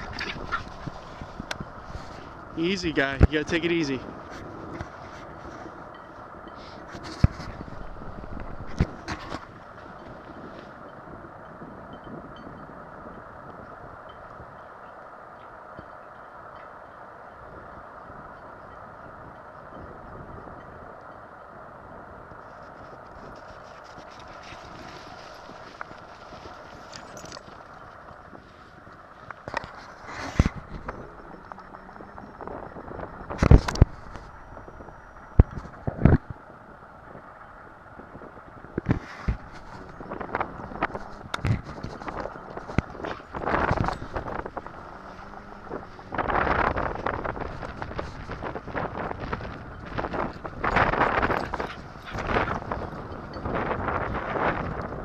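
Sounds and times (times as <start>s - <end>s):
footsteps crunching in snow: 22.5s - 31.3s.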